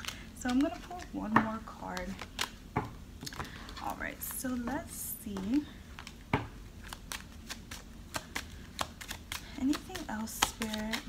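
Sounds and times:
cards being shuffled: 0.0s - 2.6s, 5.9s - 11.0s.

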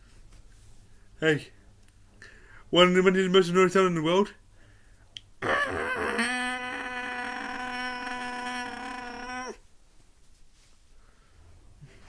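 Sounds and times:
man's wordless vocal cry: 5.4s - 9.6s.

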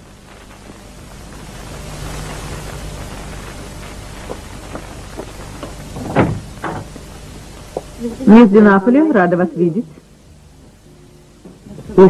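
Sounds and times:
rushing rain-like noise: 0.0s - 9.9s
faint low hum: 0.0s - 12.0s.

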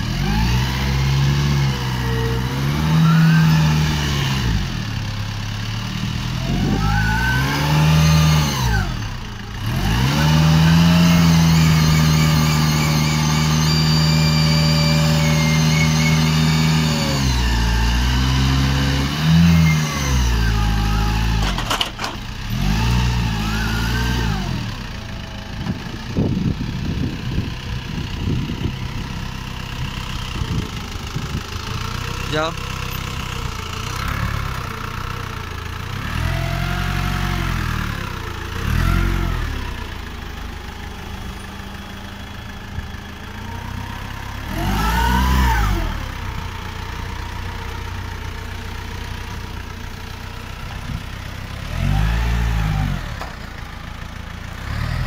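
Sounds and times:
forklift engine revving: 0.0s - 55.0s.

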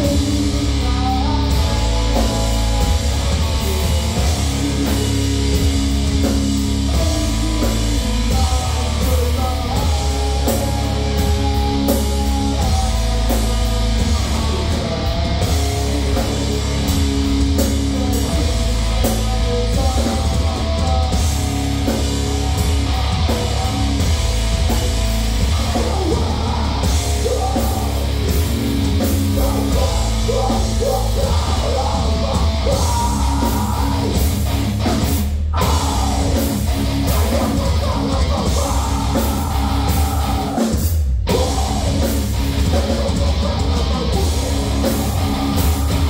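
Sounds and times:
heavy metal band playing: 0.0s - 46.0s.

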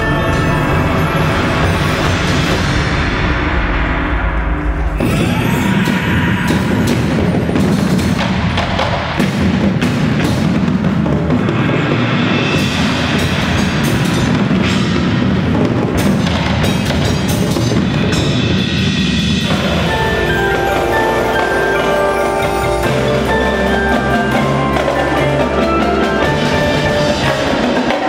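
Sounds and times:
drum strikes: 0.0s - 28.0s
sustained low mallet tones: 19.5s - 27.7s.

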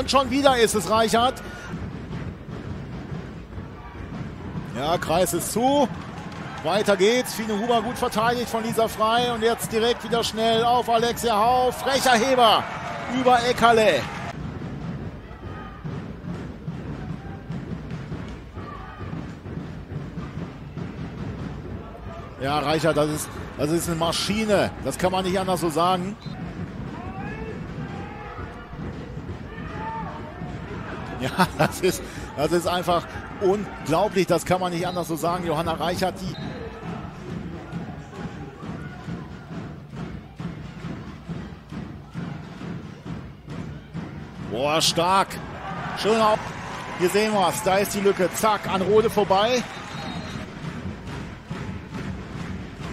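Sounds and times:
crowd voices: 0.0s - 52.9s
drums beating steady rhythm: 0.0s - 52.9s.

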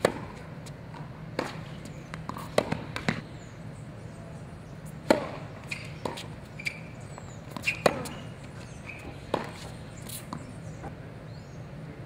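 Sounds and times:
tennis ball bouncing: 0.0s - 3.2s, 4.9s - 10.9s
tennis ball struck by racket: 0.0s - 3.2s, 5.0s - 6.8s, 7.4s - 10.5s.

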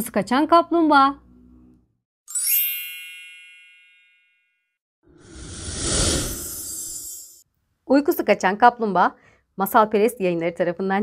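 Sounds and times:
bright bell-like chime: 2.3s - 4.8s.

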